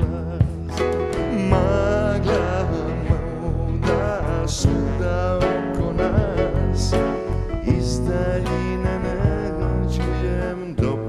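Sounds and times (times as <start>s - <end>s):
electric bass notes: 0.0s - 11.0s
man singing: 0.0s - 11.0s
strummed acoustic guitar: 0.0s - 11.0s.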